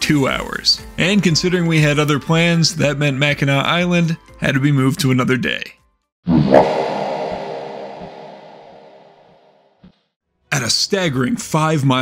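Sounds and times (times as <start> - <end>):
sudden hit with held chord: 6.5 - 9.6.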